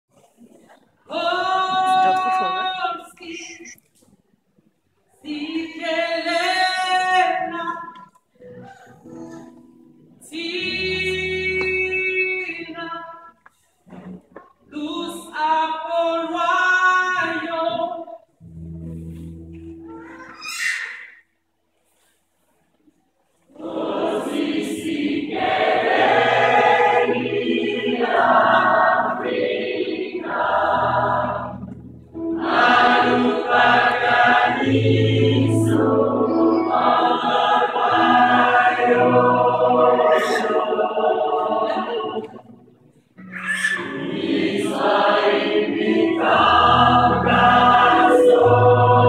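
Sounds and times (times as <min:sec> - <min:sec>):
gospel choir singing: 0:23.5 - 0:42.6, 0:43.8 - 0:49.0.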